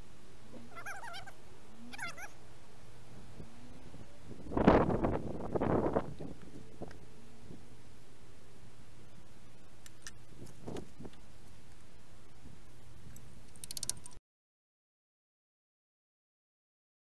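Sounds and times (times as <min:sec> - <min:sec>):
cat meowing: 0:00.6 - 0:02.4.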